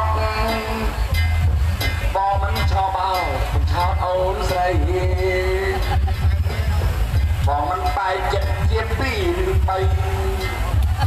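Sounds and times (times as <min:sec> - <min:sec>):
amplified opera music with bass beat: 0:00.0 - 0:11.0
sharp percussion strikes: 0:00.0 - 0:11.0.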